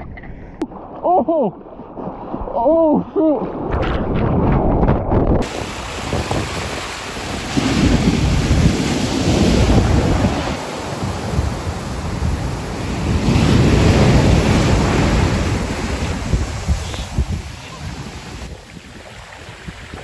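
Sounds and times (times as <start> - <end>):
wind buffeting microphone: 1.9 - 20.0
waves crashing on beach: 5.4 - 20.0.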